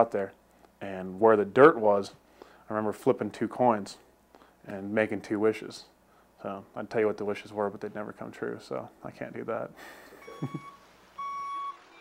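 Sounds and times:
person chuckling: 9.8 - 10.8
truck backup beeper: 10.1 - 12.0.

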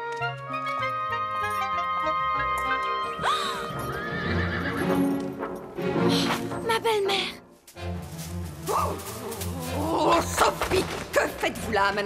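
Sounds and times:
background music: 0.0 - 12.0
horse whinnying: 3.8 - 5.1.

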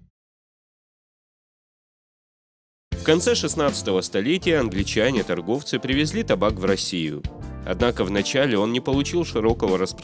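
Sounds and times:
background music: 2.9 - 10.0.

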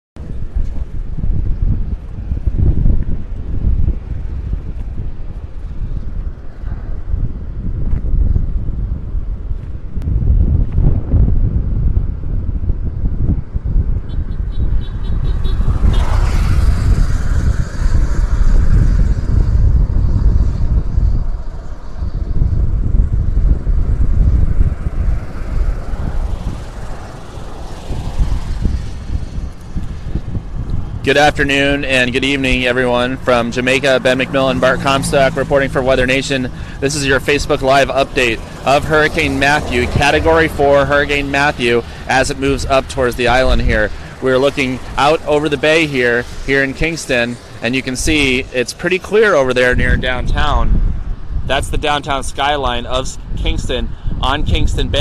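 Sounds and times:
highway traffic: 0.2 - 55.0
wind buffeting microphone: 0.2 - 55.0.

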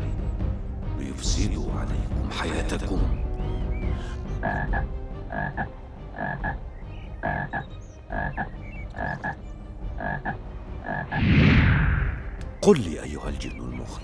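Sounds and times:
frog croaking: 4.3 - 11.2
loud rushing whoosh: 11.2 - 12.4.

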